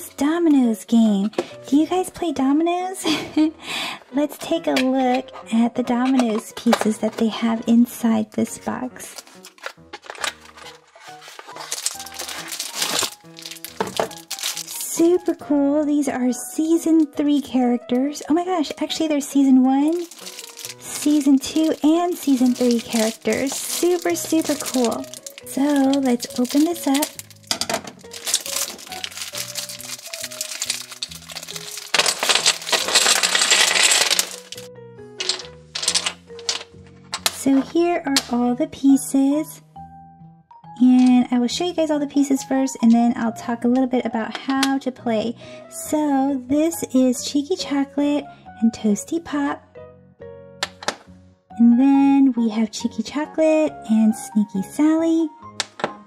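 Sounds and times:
light background music: 0:00.0 - 0:56.0
shrink-wrap crinkling: 0:09.1 - 0:15.2, 0:19.9 - 0:36.6
domino tiles clattering on table: 0:11.6 - 0:14.8, 0:19.9 - 0:21.0, 0:22.4 - 0:37.4.

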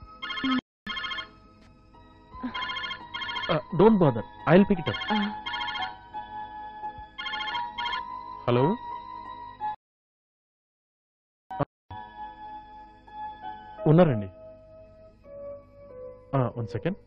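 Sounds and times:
mobile phone ringing: 0:00.2 - 0:01.4, 0:02.4 - 0:03.7, 0:04.8 - 0:06.0, 0:07.2 - 0:08.1.

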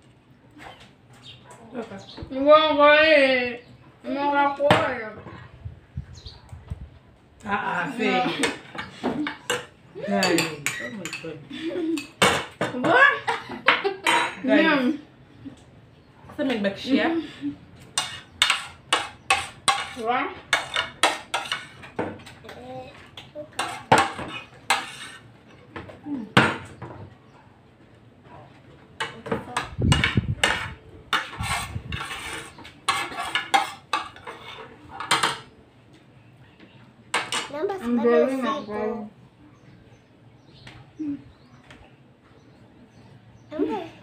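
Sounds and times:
metal spoon scraping ceramic plate: 0:18.0 - 0:22.0, 0:23.6 - 0:25.3, 0:29.9 - 0:35.5.

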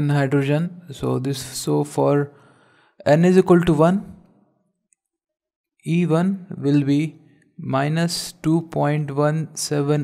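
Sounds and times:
man speaking: 0:00.0 - 0:02.3, 0:03.0 - 0:04.2, 0:05.8 - 0:10.0.

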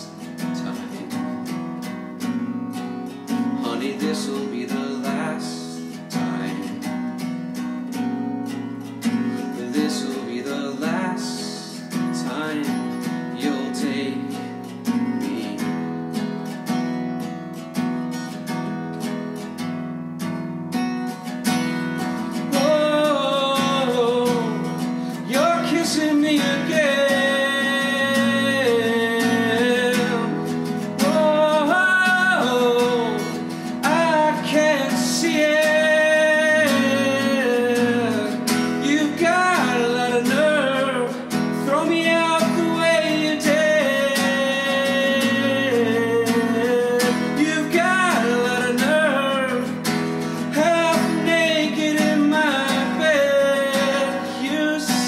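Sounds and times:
acoustic guitar strumming chords: 0:00.0 - 0:55.0
man singing long notes: 0:22.5 - 0:49.7.

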